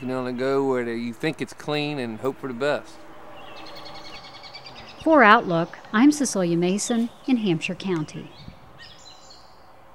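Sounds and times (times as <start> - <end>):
faint outdoor background: 0.0 - 9.9
songbird chirping: 0.0 - 9.9.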